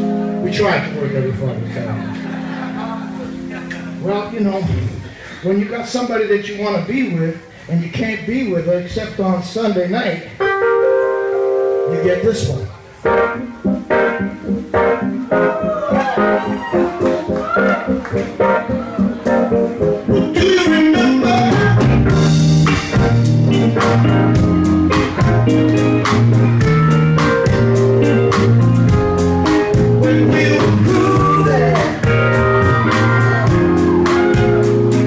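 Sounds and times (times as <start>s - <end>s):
live band playing a relaxed groove: 0.0s - 5.4s, 10.4s - 35.0s
steady bass line: 17.0s - 35.0s.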